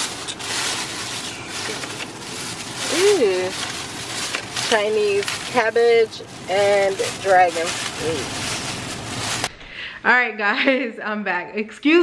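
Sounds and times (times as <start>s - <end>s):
plastic bags rustling: 0.0s - 9.6s.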